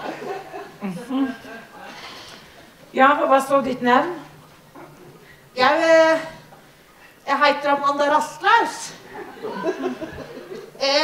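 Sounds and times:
audience laughing: 0.0 - 2.2, 9.0 - 10.8.

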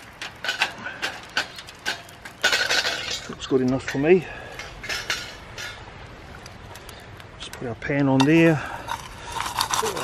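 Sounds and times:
charcoal clicking as it settles: 0.0 - 3.4, 8.2 - 10.0
wind: 0.0 - 10.0.

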